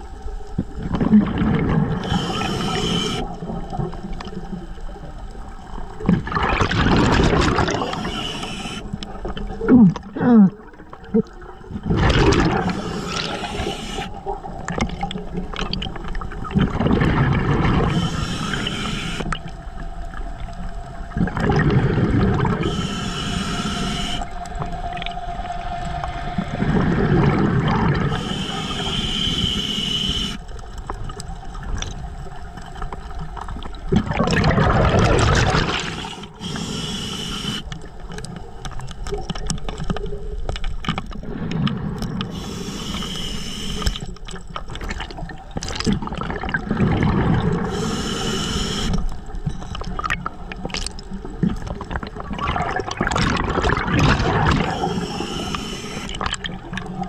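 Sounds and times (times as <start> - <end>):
exhaled bubbles gushing: 0.6 - 30.4, 31.0 - 38.0, 43.8 - 57.0
regulator inhale hiss: 2.0 - 3.5, 7.8 - 9.0, 12.6 - 14.4, 17.8 - 19.5, 22.5 - 24.6, 28.0 - 30.6, 35.7 - 37.8, 42.3 - 44.2, 47.6 - 49.2, 54.6 - 56.3.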